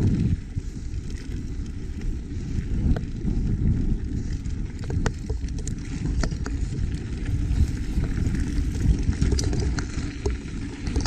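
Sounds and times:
bike tyres rumbling on dirt: 0.0 - 11.0
wind buffeting microphone: 0.0 - 11.0
light clicks and rattles: 4.2 - 11.0.

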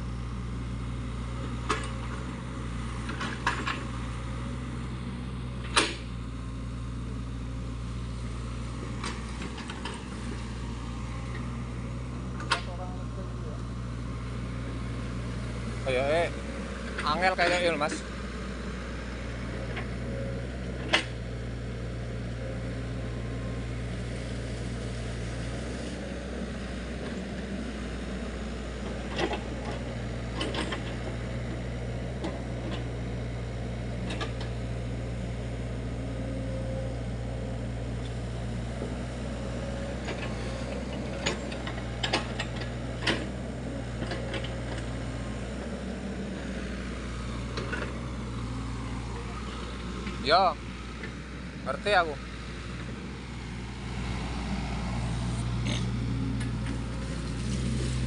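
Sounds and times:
excavator diesel engine running: 0.0 - 58.0.

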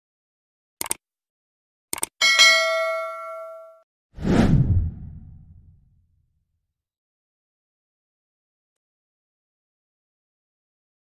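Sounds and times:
whoosh with deep low tail: 4.2 - 6.0.

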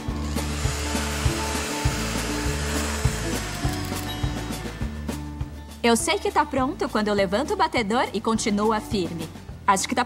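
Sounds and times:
electric hand mixer whipping cream: 0.0 - 4.0.

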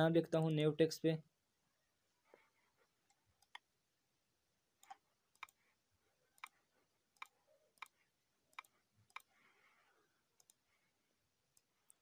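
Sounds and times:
faint computer mouse clicks: 3.1 - 3.7, 4.8 - 5.6, 7.2 - 9.3, 10.4 - 10.6.

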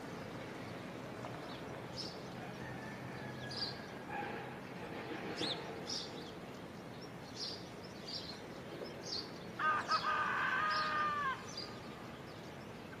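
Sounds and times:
birds chirping: 0.0 - 13.0
drawn-out bird call: 5.3 - 13.0.

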